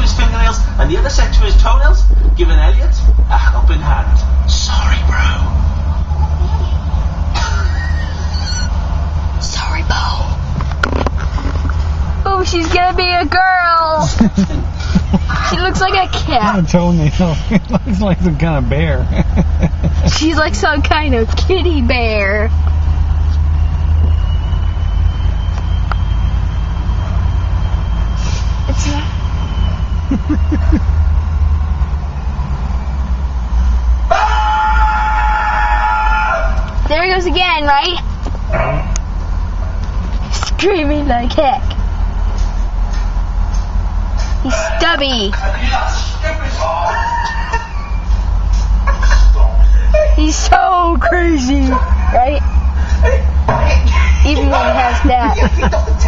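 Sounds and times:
car interior rumble: 0:00.0 - 0:56.0
voices: 0:00.0 - 0:56.0.

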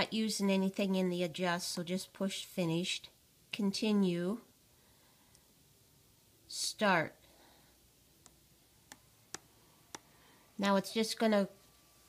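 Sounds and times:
stylus tapping touchscreen: 0:08.2 - 0:10.1.

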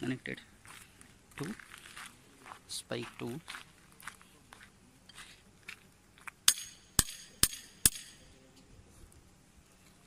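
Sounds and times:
knocks on metal spike: 0:06.5 - 0:08.2.

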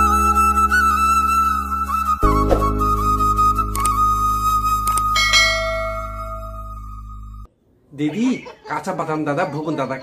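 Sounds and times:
bell chime: 0:05.2 - 0:06.7
held music note: 0:05.2 - 0:07.0.

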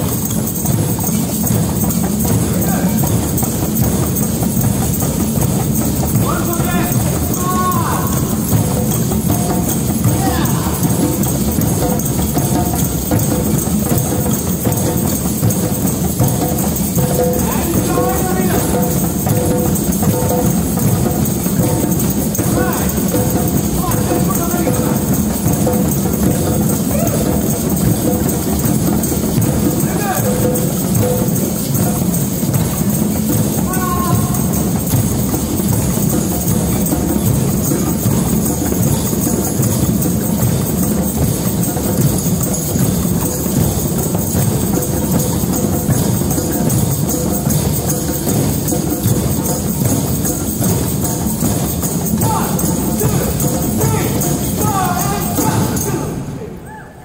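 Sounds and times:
drum circle of hand drums: 0:00.0 - 0:57.0.

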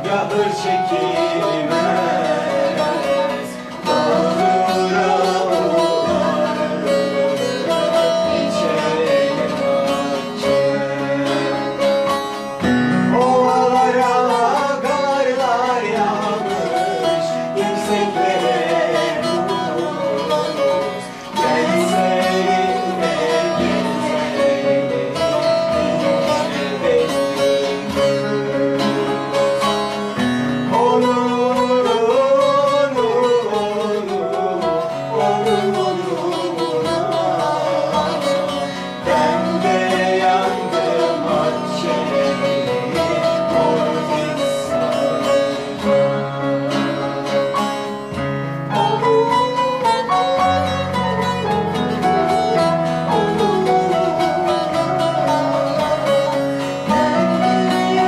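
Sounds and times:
plucked long-necked lute melody: 0:00.0 - 0:58.0.

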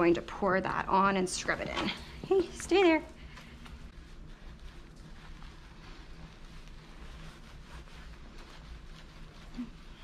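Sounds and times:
hands rubbing wet fur: 0:00.0 - 0:10.0
steady low hum: 0:00.0 - 0:10.0.

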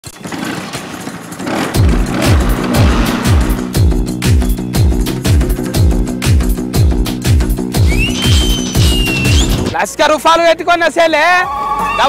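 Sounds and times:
scooter engine kick-started: 0:00.0 - 0:03.7
music with heavy beat: 0:01.5 - 0:09.8.

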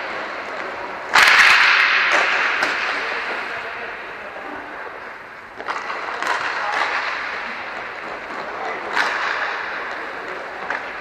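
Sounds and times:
hockey puck struck: 0:00.0 - 0:11.0
rattling echo: 0:00.0 - 0:11.0.

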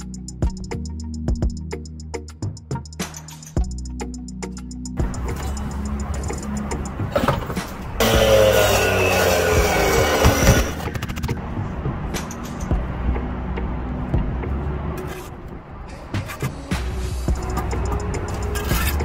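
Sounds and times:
background music: 0:00.0 - 0:19.0
power drill driving fastener: 0:08.0 - 0:10.8.

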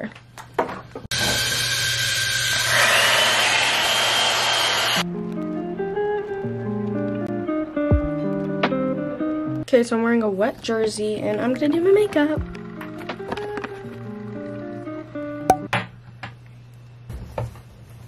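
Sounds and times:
hair dryer blowing: 0:01.1 - 0:05.0
music with plucked guitar: 0:05.0 - 0:09.6.

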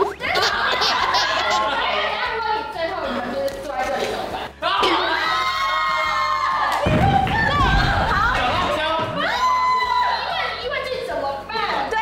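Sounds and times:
people laughing: 0:00.0 - 0:02.6, 0:03.6 - 0:05.2
people shouting and shrieking: 0:04.6 - 0:10.6.

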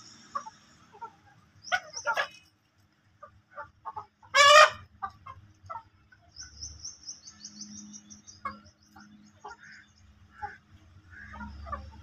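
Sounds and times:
chickens clucking: 0:00.0 - 0:06.6, 0:08.1 - 0:12.0
chicken squawking: 0:00.3 - 0:02.5, 0:03.2 - 0:05.9.

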